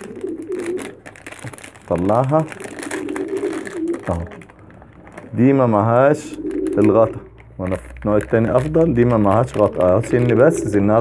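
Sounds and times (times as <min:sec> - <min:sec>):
pigeon cooing: 0:00.0 - 0:01.0, 0:02.5 - 0:07.4, 0:09.6 - 0:11.0
plastic wrapper crinkling: 0:00.0 - 0:11.0.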